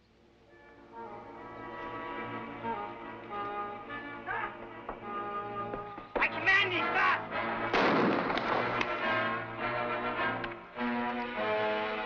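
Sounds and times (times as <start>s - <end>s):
orchestral music: 0.4s - 12.0s.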